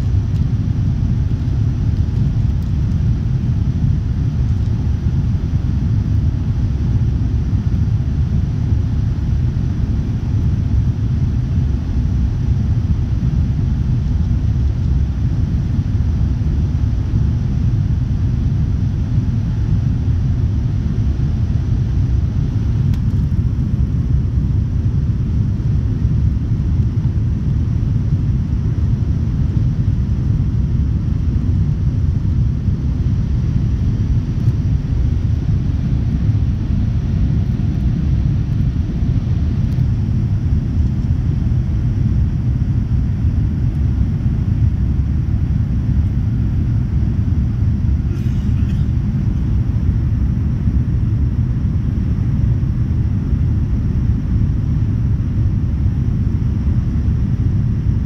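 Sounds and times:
airliner engines rumbling in cabin: 0:00.0 - 0:58.0.

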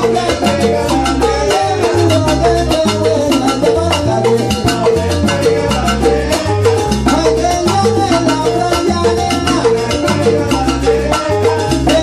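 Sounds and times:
busy percussion: 0:00.0 - 0:12.0
repeating bass line: 0:00.0 - 0:12.0
salsa band playing: 0:00.0 - 0:12.0.

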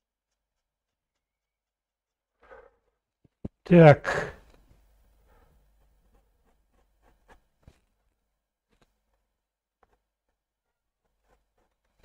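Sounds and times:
paintbrush dabbing on canvas: 0:00.0 - 0:02.4, 0:04.9 - 0:12.0.

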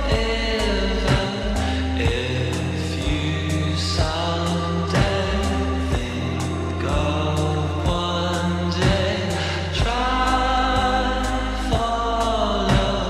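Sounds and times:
deep sustained bass: 0:00.0 - 0:13.0
person singing: 0:00.0 - 0:13.0
steady beat: 0:00.0 - 0:13.0.

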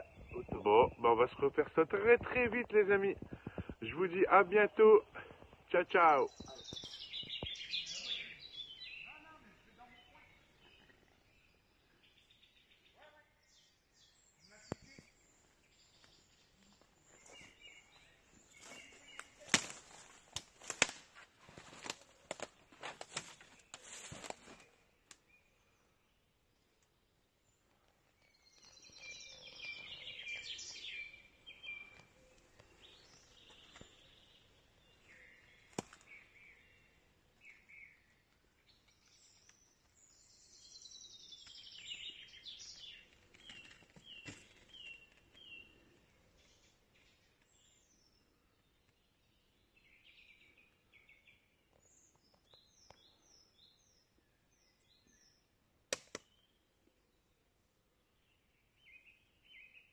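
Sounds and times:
faint songbirds singing: 0:00.0 - 0:20.9, 0:21.7 - 0:59.9
sharp click: 0:55.9 - 0:56.3.

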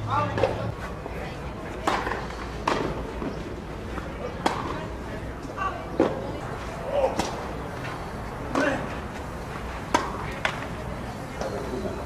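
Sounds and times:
tennis ball struck by rackets: 0:01.8 - 0:03.3, 0:04.4 - 0:04.8, 0:09.9 - 0:10.7.

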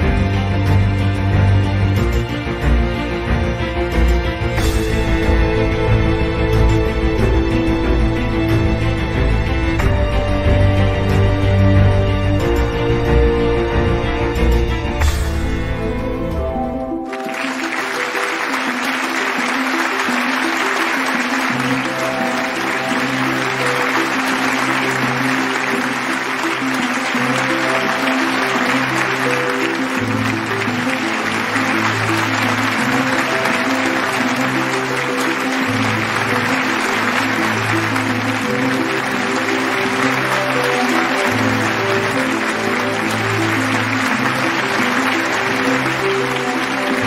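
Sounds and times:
audience applauding: 0:00.0 - 0:47.0.

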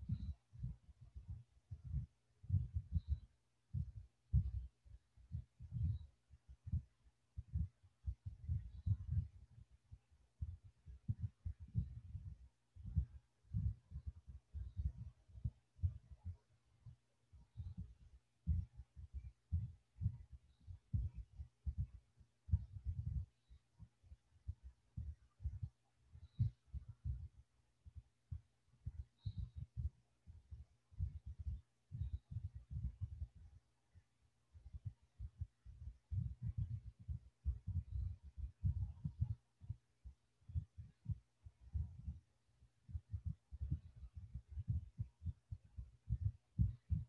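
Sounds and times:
faint steady hum: 0:00.0 - 0:47.0.

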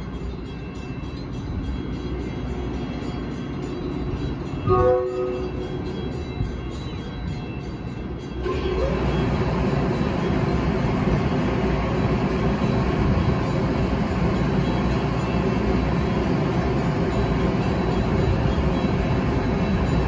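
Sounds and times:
faint steady tones: 0:00.0 - 0:20.0
train rumbling at platform: 0:00.0 - 0:20.0.

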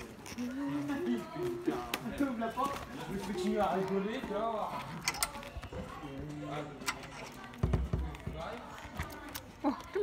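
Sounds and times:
key clicking in a padlock: 0:05.0 - 0:05.5.

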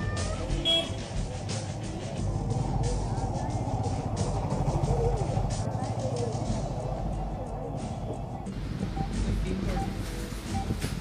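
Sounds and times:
traffic running: 0:00.0 - 0:11.0.

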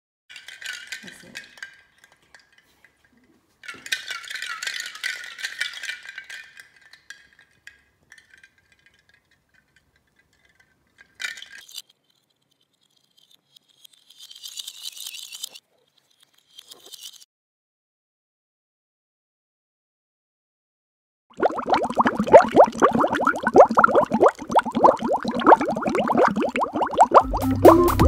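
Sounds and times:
ice cubes rattling in glass jar: 0:00.3 - 0:17.3, 0:21.4 - 0:27.2.

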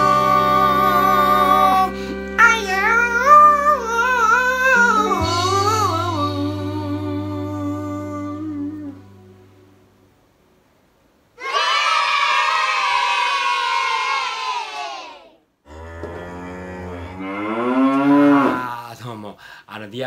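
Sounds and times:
man singing long vocal note: 0:00.0 - 0:09.7
lower voice sound: 0:00.0 - 0:10.0.

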